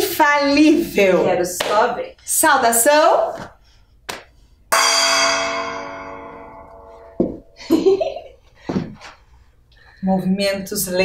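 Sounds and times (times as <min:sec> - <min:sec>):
gong strike ringing: 0:04.7 - 0:07.6.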